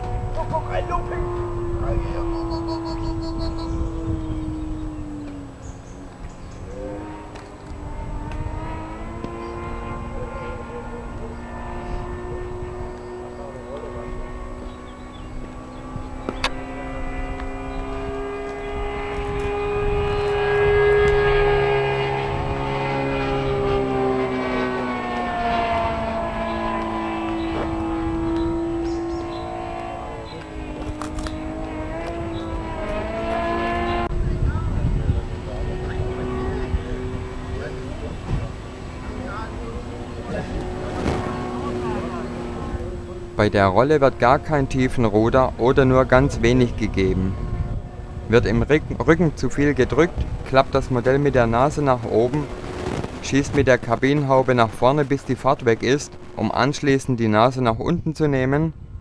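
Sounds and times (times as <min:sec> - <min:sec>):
model aircraft engine droning: 0:00.0 - 0:59.0.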